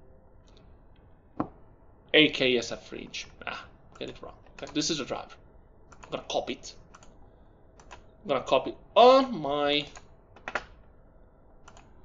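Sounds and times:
computer keys clicking: 0:03.9 - 0:04.9, 0:05.9 - 0:06.2, 0:06.9 - 0:07.2, 0:07.8 - 0:08.1, 0:11.6 - 0:12.0.

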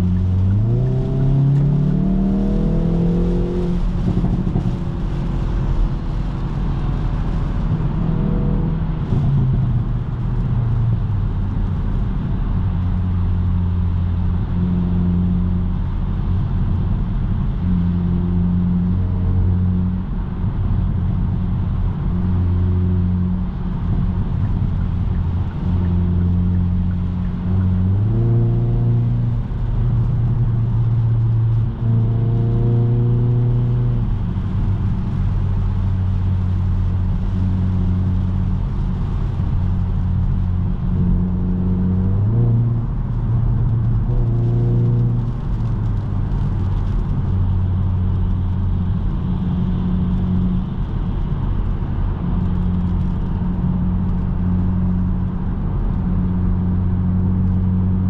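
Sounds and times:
car engine drone: 0:00.0 - 0:58.0
tyre noise on wet road: 0:00.0 - 0:58.0.

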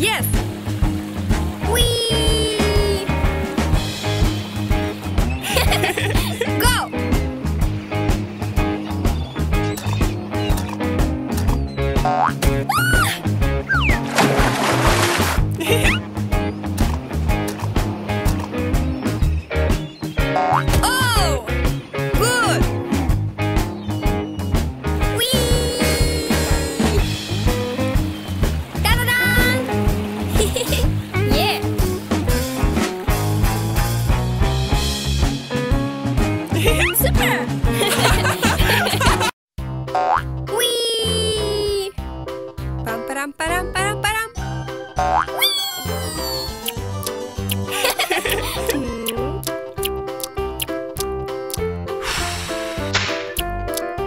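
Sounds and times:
upbeat cartoon music: 0:00.0 - 0:54.0
comic boing: 0:12.1 - 0:13.1, 0:20.4 - 0:20.9, 0:40.0 - 0:40.3, 0:45.0 - 0:46.1
rising swoop sound effect: 0:52.0 - 0:53.4.

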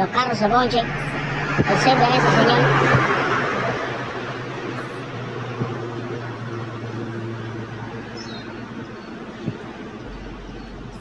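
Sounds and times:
passing car road noise: 0:00.0 - 0:11.0
steady low hum: 0:00.0 - 0:11.0.

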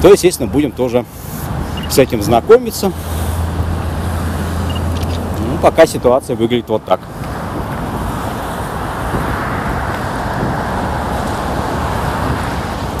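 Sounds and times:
cars on busy street: 0:00.0 - 0:13.0.

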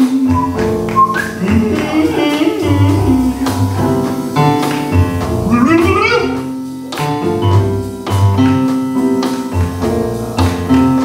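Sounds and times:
plucked upright bass: 0:00.0 - 0:06.5
jazz piano: 0:00.0 - 0:11.0.

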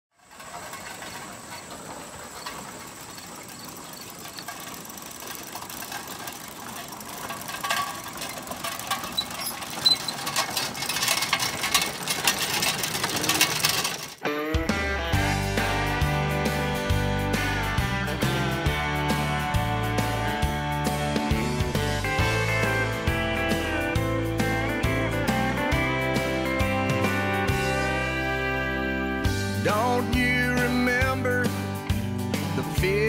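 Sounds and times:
horses pulling clattering wagon: 0:00.1 - 0:14.2, 0:15.6 - 0:33.0
country song with strummed guitar: 0:13.3 - 0:33.0.

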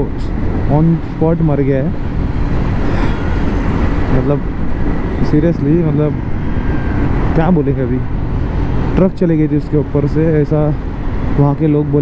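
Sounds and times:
road noise: 0:00.0 - 0:12.0
wind rush: 0:00.0 - 0:12.0.

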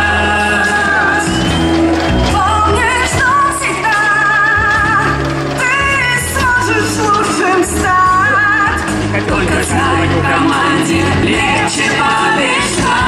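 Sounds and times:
women singing pop anthem: 0:00.0 - 0:01.5, 0:02.3 - 0:13.0
amplified backing track: 0:00.0 - 0:13.0.

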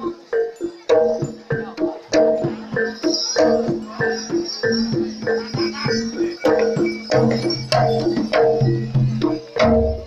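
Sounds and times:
gamelan playing: 0:00.0 - 0:10.0.

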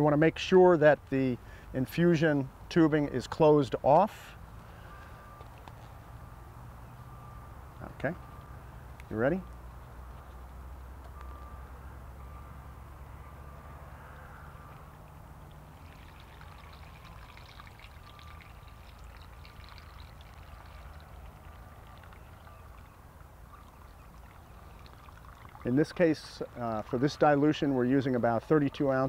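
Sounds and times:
water trickling and splashing: 0:14.7 - 0:28.5.

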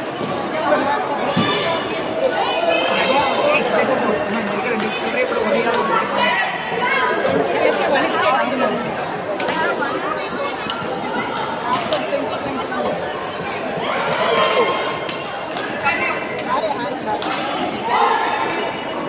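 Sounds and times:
chatter of many voices: 0:00.0 - 0:19.0.

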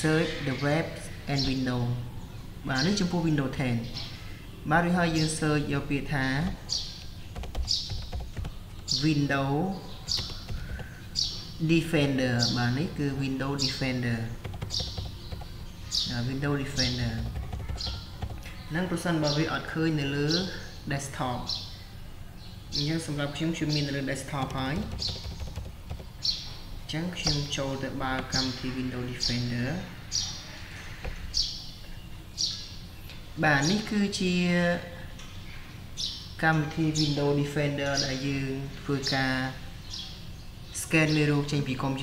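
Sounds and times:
low background noise: 0:00.0 - 0:42.0
typing on computer keyboard: 0:07.3 - 0:08.9, 0:10.2 - 0:10.9, 0:14.4 - 0:15.5, 0:17.2 - 0:18.5, 0:24.4 - 0:26.2.

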